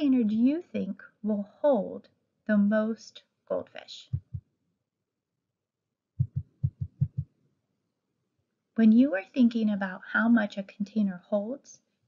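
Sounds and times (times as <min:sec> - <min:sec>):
low dull thumps: 0:04.1 - 0:04.4, 0:06.2 - 0:07.2.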